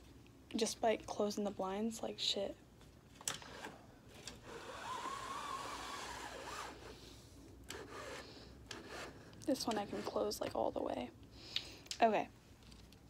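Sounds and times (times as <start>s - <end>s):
window blind clicks: 3.2s - 7.0s, 7.7s - 10.3s
blind slats and cord rubbing: 3.2s - 7.1s, 7.7s - 10.6s.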